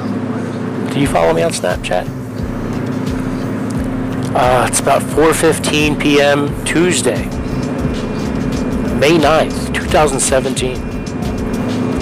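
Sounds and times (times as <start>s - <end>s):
car road and engine drone: 0.0s - 12.0s.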